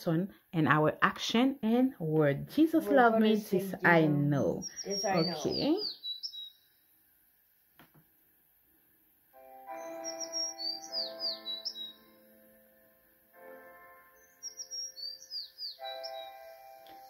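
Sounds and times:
birdsong chirps: 3.0s - 7.0s, 9.7s - 12.6s, 13.6s - 17.0s.

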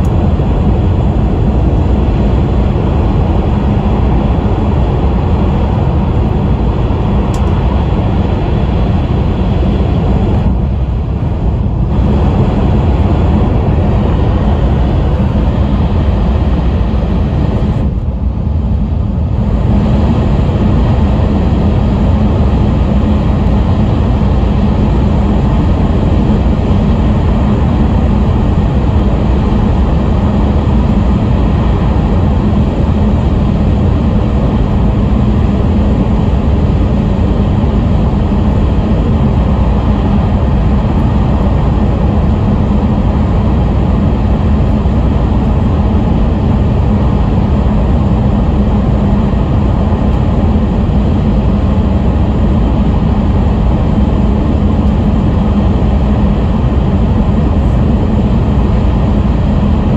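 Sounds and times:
constant low hum: 0.0s - 59.9s
train rumbling through tunnel: 0.0s - 59.9s.

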